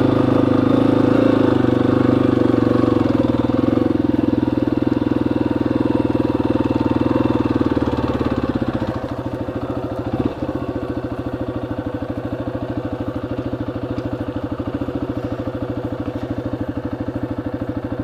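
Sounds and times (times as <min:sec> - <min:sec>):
motorcycle engine idling: 0:00.0 - 0:18.0.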